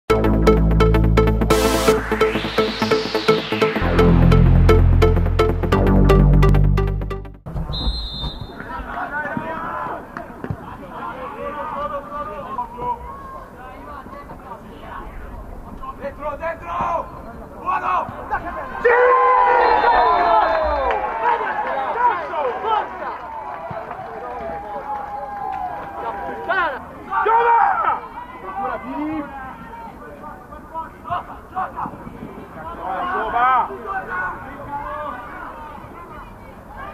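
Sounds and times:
open-air background noise: 7.5 - 36.9
players shouting and calling: 25.6 - 36.9.

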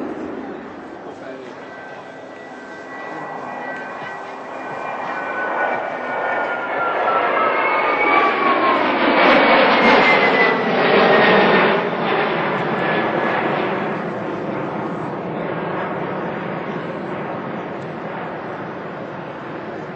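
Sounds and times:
jet engines passing by: 0.0 - 19.9.

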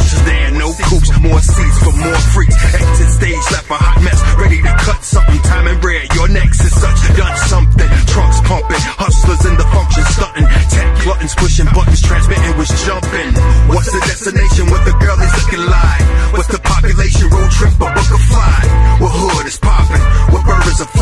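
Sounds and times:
rapping over a heavy bass beat: 0.0 - 21.0.

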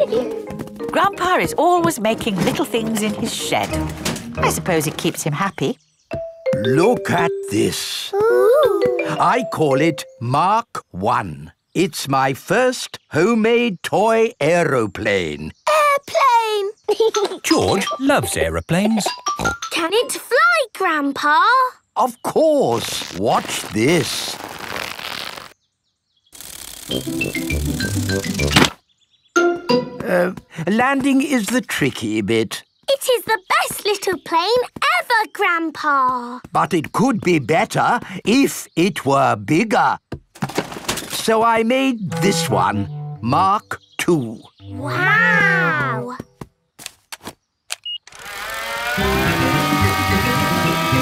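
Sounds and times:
toy propeller engine buzzing drone: 26.4 - 27.1, 48.1 - 51.0.

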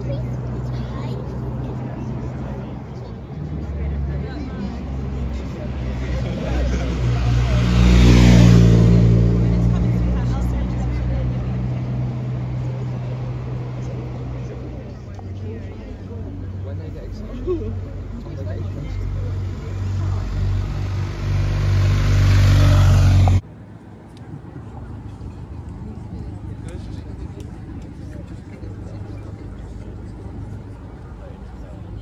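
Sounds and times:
vehicle passing by: 0.0 - 23.4
crowd chatter: 0.0 - 32.0.

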